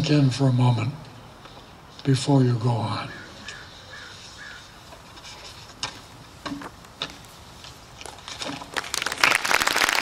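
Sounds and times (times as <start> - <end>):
crowd applause: 8.7 - 10.0.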